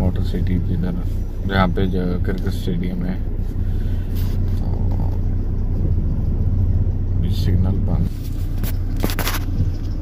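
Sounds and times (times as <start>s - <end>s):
car engine rumble: 0.0s - 10.0s
road noise inside car: 0.0s - 10.0s.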